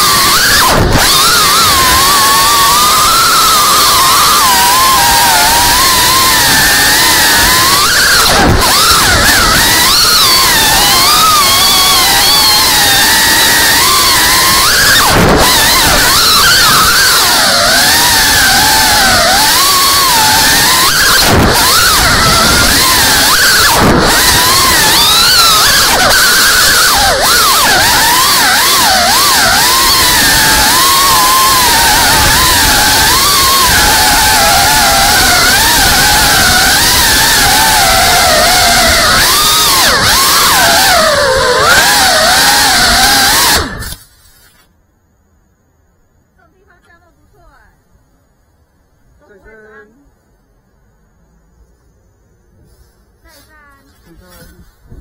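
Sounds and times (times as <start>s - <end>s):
wind and prop wash rush: 0.0s - 44.0s
drone motors whining: 0.0s - 44.6s.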